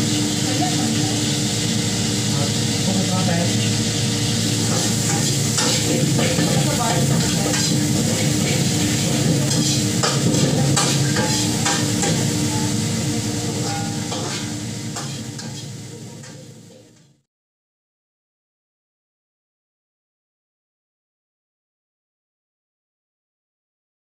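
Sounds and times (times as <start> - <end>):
food sizzling in wok: 0.0 - 17.2
metal spatula scraping pan: 4.4 - 12.6, 13.5 - 16.4.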